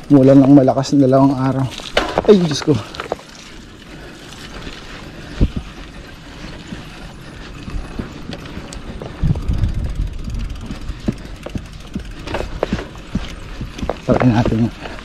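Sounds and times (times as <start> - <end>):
bicycle rattling on dirt track: 0.0 - 15.0
wind buffeting microphone: 1.9 - 15.0
low rumble: 7.3 - 14.0.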